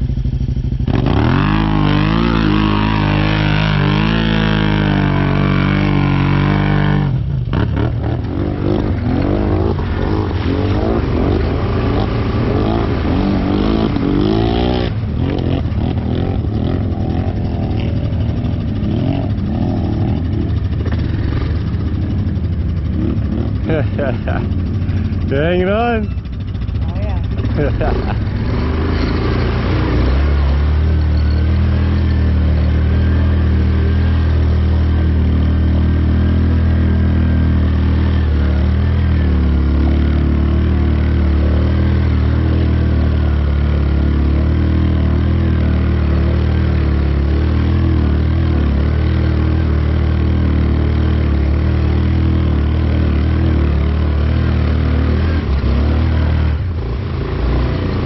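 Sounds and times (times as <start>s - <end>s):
atv engine revving and idling: 0.0s - 58.0s.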